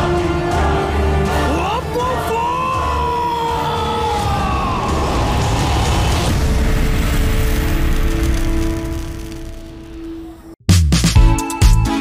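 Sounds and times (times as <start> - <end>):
film score sustained notes: 0.0 - 10.5
man screaming: 1.5 - 6.2
low rumble: 4.2 - 10.6.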